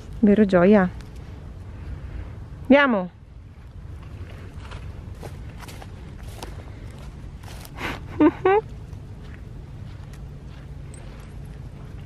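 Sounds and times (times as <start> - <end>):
steady low rumble: 0.0 - 12.0
footsteps through grass and leaves: 4.0 - 12.0.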